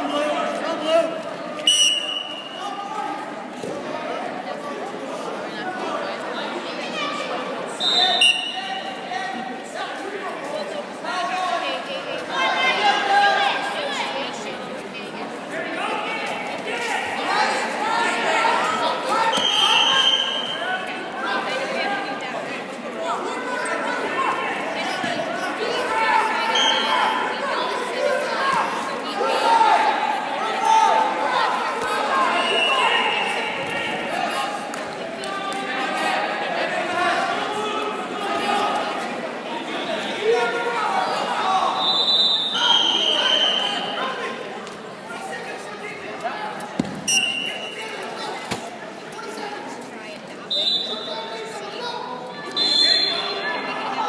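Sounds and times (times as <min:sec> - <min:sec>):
background voices in a gym: 0:00.0 - 0:54.0
whistle blast: 0:01.6 - 0:02.6, 0:07.8 - 0:08.6, 0:19.3 - 0:20.6, 0:41.8 - 0:44.0, 0:47.1 - 0:47.8, 0:52.5 - 0:53.4
people calling out: 0:16.7 - 0:22.2, 0:23.2 - 0:44.5
thump: 0:46.8 - 0:47.1.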